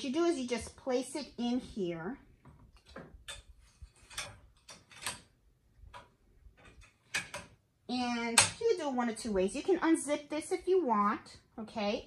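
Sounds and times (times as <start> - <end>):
embroidery hoop clicks and knocks: 2.8 - 7.6.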